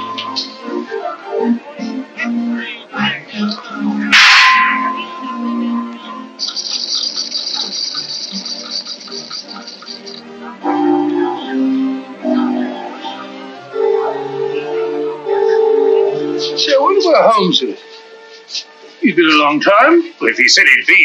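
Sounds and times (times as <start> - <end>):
orchestral film music: 3.2 - 19.7
high rapid ringing: 6.4 - 10.3
lingering ringing tone: 6.4 - 10.4.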